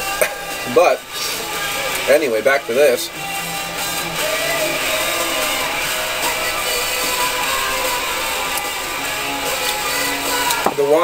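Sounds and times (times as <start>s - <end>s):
background guitar music: 0.0s - 11.0s.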